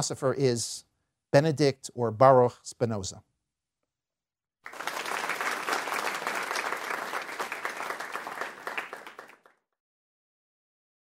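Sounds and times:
audience applauding: 4.7s - 9.6s.

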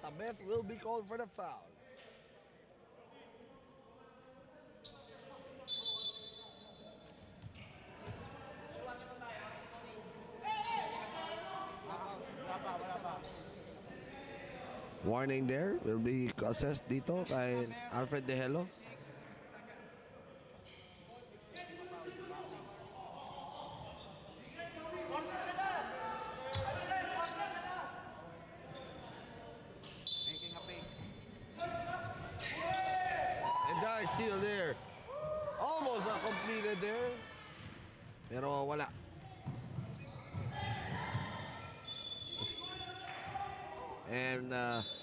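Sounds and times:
basketball bouncing on hardwood: 39.4s - 40.5s.

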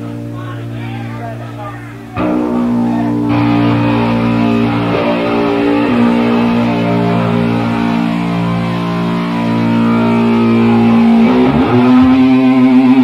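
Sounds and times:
bass guitar sustained notes: 0.0s - 13.0s
distorted electric guitar: 0.0s - 13.0s.

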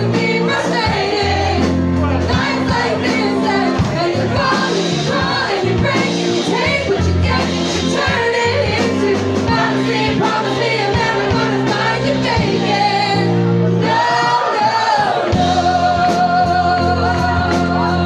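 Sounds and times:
drums: 0.0s - 18.0s
piano: 0.0s - 18.0s
voices singing: 0.0s - 18.0s.

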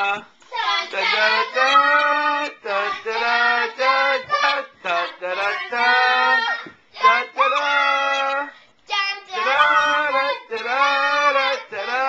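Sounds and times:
child singing wordless tune: 0.5s - 3.2s, 3.9s - 12.0s.

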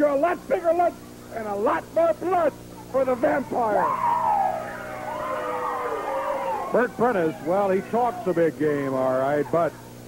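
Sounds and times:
person howling: 3.7s - 6.8s.

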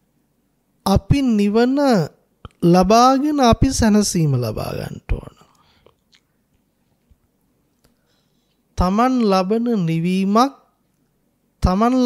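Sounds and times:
man speaking into a microphone: 0.9s - 5.5s, 8.8s - 10.6s, 11.6s - 12.0s.

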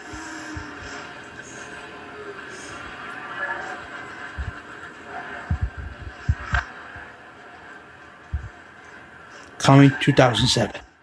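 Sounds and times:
crowd haze: 0.0s - 10.8s
dull low thumps: 5.5s - 6.6s.

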